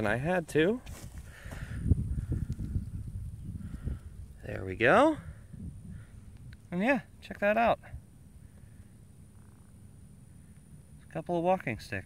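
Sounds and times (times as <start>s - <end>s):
rumbling and crackling on microphone: 0.0s - 12.0s.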